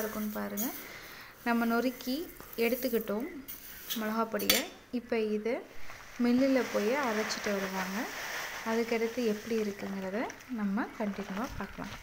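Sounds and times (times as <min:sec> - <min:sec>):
ladle stirring lentils in metal pot: 0:00.0 - 0:04.8, 0:05.7 - 0:12.0.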